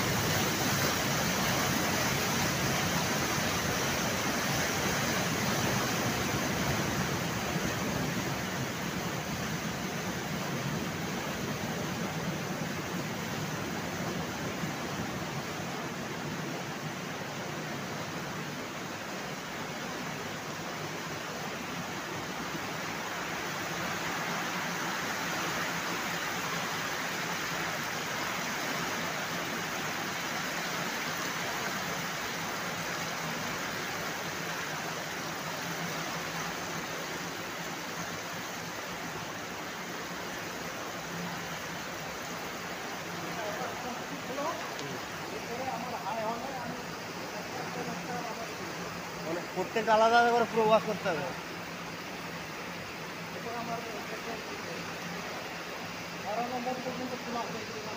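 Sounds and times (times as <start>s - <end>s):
water rushing and splashing: 0.0s - 57.9s.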